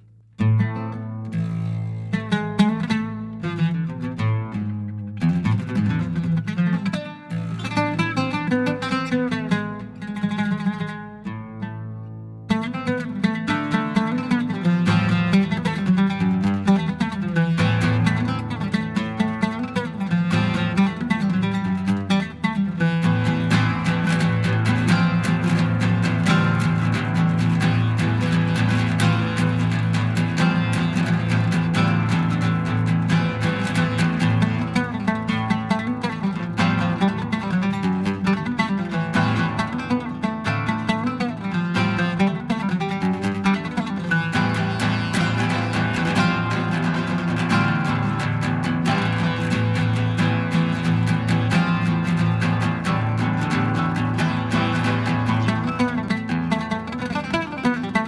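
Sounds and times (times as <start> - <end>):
oud rapid plucked runs: 12.5 - 58.0.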